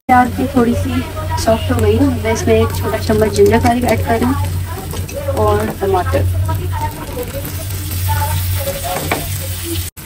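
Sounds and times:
low steady hum: 0.1s - 9.8s
wooden spatula stirring: 1.2s - 9.7s
vegetables sizzling in hot oil: 2.2s - 10.0s.

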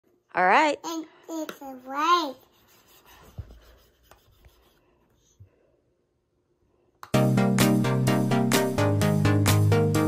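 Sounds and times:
child's voiced sound: 0.8s - 2.5s
stylus scratching on screen: 1.8s - 4.8s.

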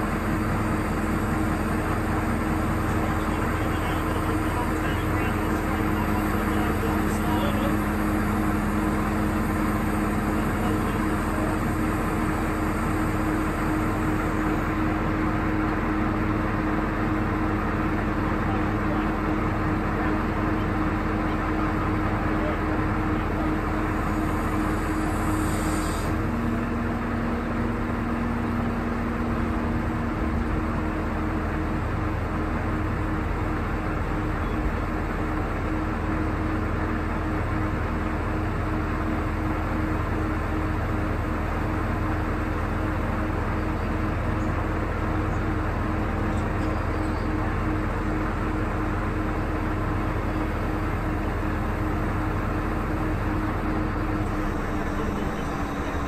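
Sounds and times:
diesel engine humming: 0.0s - 56.0s.

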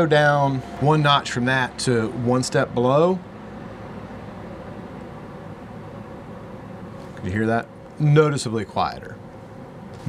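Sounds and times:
air purifier fan rushing: 0.0s - 10.0s
faint steady hum: 0.0s - 10.0s.

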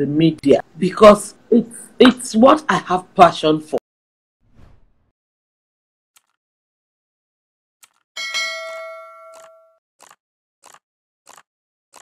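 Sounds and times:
bell chime ding: 8.2s - 9.8s.

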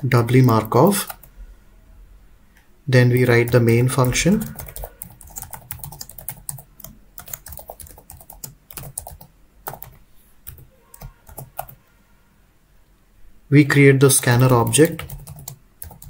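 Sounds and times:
typing on computer keyboard: 3.4s - 11.8s, 14.2s - 16.0s.

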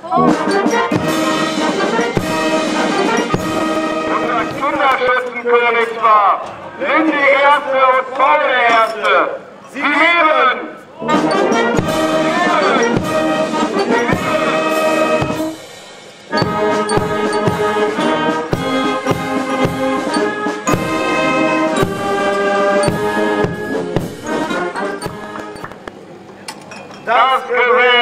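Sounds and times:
steady drum beat: 0.0s - 5.1s, 11.0s - 25.6s
brass band playing chords: 0.0s - 8.5s, 9.4s - 26.3s.

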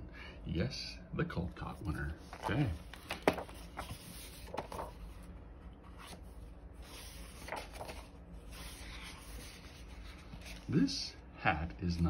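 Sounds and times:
book pages turning: 1.8s - 10.8s.

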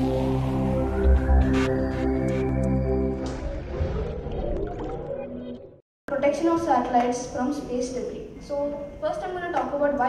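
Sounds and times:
electronic intro music: 0.0s - 5.8s.

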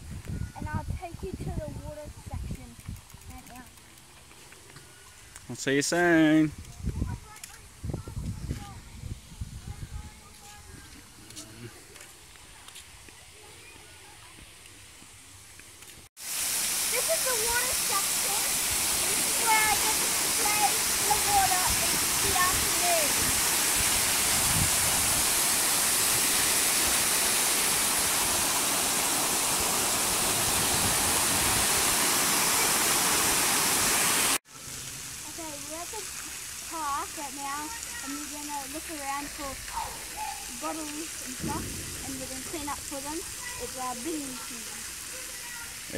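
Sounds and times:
water spraying and pouring: 15.8s - 45.9s.

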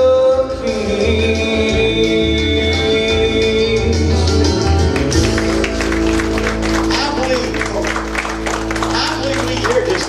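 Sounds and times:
keyboard holding sustained chords: 0.0s - 10.0s
congregation clapping: 4.8s - 10.0s.

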